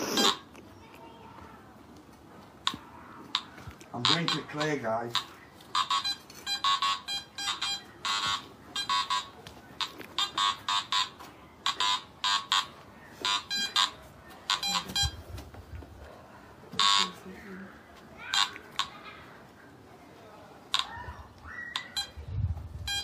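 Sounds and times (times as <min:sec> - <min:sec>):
metal detector beeping: 0:03.4 - 0:15.3, 0:16.8 - 0:17.2, 0:21.6 - 0:22.2.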